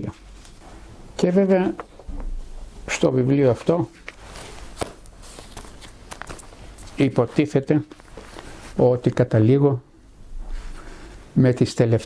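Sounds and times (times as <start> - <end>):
faint room noise: 0.0 - 12.0
paper rustling: 3.6 - 8.8.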